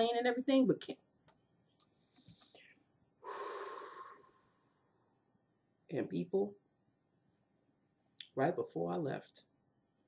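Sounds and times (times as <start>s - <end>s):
woman exhaling: 3.2s - 4.7s.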